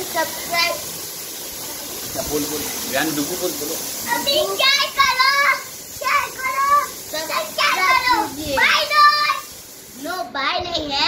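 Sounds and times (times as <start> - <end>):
young children talking: 4.0 - 11.0.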